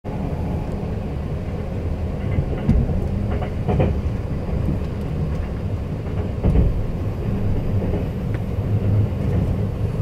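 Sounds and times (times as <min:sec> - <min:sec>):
train running low rumble: 0:00.1 - 0:10.0.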